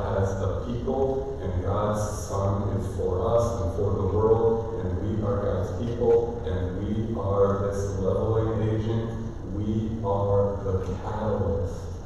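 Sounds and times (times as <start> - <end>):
man preaching: 0.0 - 12.0.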